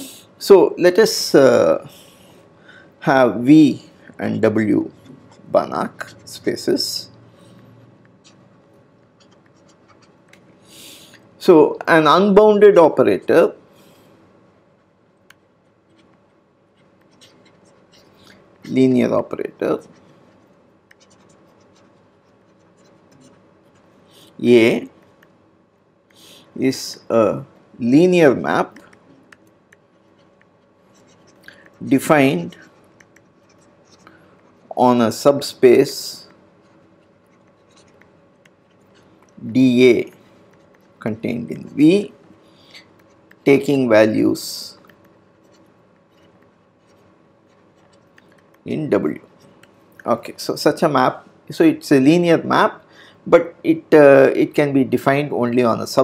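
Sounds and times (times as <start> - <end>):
faint room hum: 0.0 - 56.0
stylus scratching on tablet screen: 4.2 - 14.0, 14.6 - 25.4, 26.0 - 50.8.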